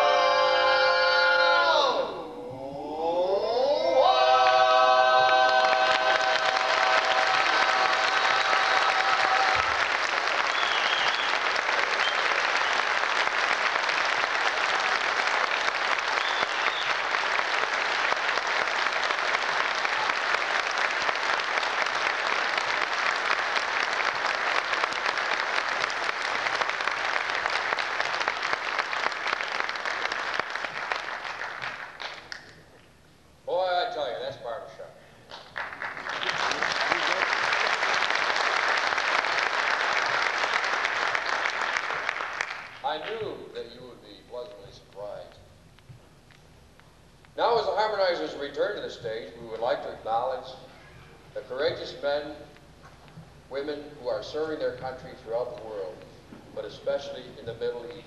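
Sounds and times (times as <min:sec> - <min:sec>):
male vocal quartet singing: 0:00.0 - 0:09.6
audience applause: 0:04.0 - 0:32.5, 0:35.3 - 0:43.2.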